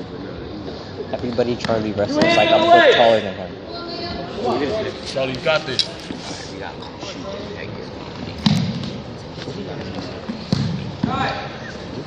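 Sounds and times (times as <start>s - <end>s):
faint voices echoing in gym: 0.0s - 12.0s.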